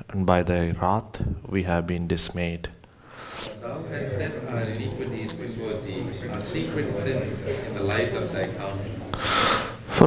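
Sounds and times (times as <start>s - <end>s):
sharp intake of breath: 3.0s - 3.6s, 9.1s - 10.0s
group of voices reading aloud: 3.4s - 9.7s.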